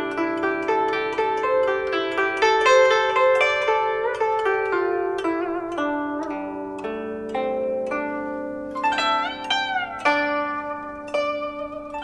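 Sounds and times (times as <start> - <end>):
plucked zither notes: 0.0 - 12.0.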